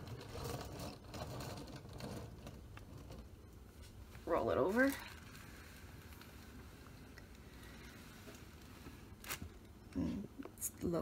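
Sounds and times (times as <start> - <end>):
small wheels rolling and scraping: 0.0 - 9.5.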